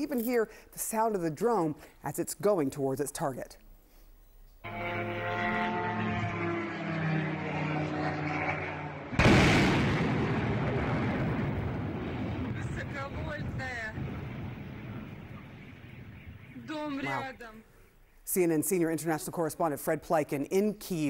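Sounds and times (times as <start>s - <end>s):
drone engine buzzing overhead: 4.6s - 10.2s
rumble: 4.9s - 16.6s
loud explosion: 7.0s - 17.0s.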